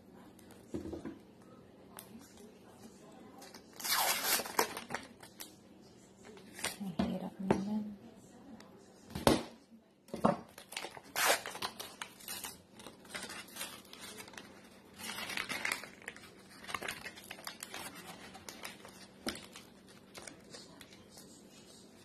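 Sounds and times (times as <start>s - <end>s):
paper wrapper tearing: 3.5s - 5.5s, 10.6s - 21.0s.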